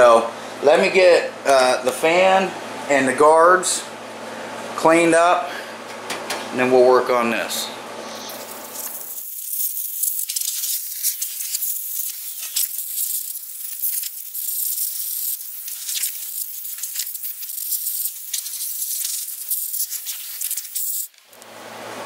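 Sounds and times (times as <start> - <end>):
hose spray hitting metal: 8.1 - 21.1.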